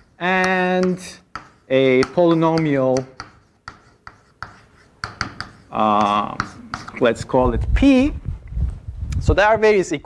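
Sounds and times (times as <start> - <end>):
chalk tapping and scraping on blackboard: 0.0 - 7.4.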